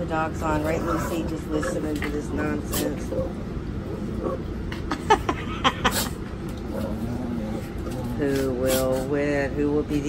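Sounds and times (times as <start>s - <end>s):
drawn-out dog vocal sound: 0.5s - 4.9s, 5.7s - 9.2s.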